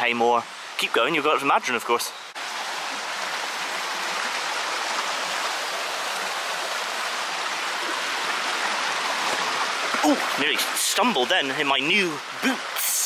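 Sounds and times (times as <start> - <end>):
stream water rushing: 0.0 - 13.0.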